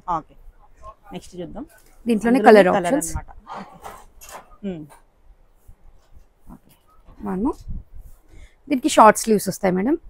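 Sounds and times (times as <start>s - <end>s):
person saying okay: 2.2s - 3.4s.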